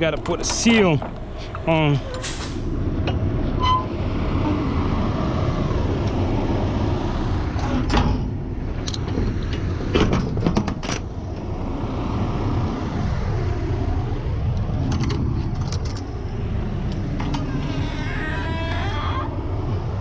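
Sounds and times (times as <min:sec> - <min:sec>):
truck engine idling: 0:11.0 - 0:18.4.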